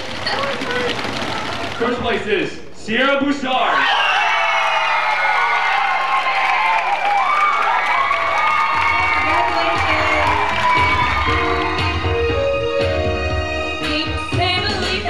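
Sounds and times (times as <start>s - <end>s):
applause: 0.0s - 1.8s, 4.6s - 12.1s
crowd cheering and shouting: 3.6s - 14.1s.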